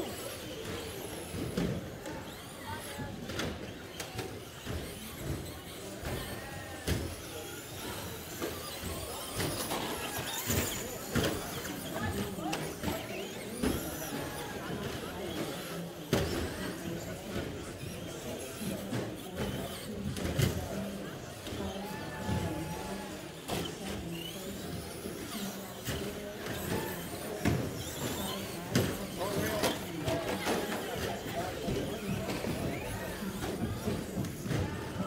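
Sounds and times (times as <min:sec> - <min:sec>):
electric motors whining: 0:00.0 - 0:35.0.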